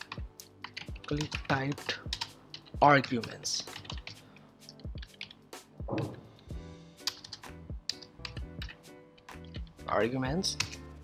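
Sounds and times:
keyboard keys clicking: 0.0 - 6.3, 7.0 - 8.8
background music with sustained notes: 0.0 - 11.0.

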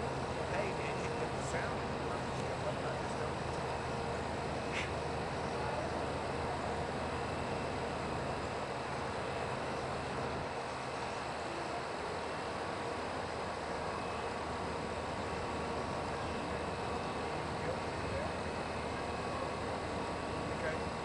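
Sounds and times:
continuous rushing hum: 0.0 - 21.0.

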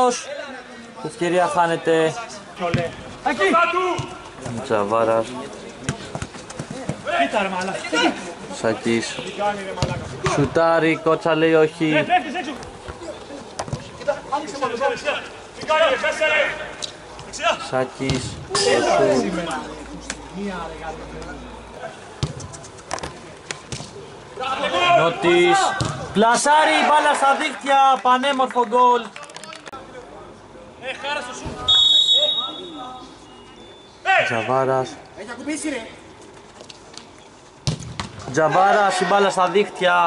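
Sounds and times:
players calling: 0.0 - 36.2
players shouting: 14.0 - 17.7, 18.5 - 19.8, 24.4 - 28.2
football being kicked: 22.2 - 22.5, 25.8 - 26.0
referee's whistle blast: 31.6 - 33.9.

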